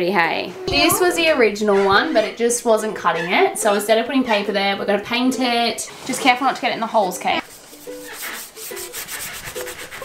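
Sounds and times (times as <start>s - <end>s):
paintbrush rubbing on cardboard: 7.4s - 10.0s.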